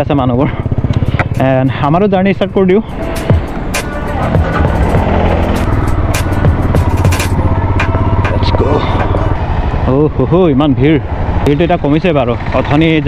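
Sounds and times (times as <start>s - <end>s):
motorcycle engine running: 0.0s - 13.0s
song playing: 1.3s - 9.5s.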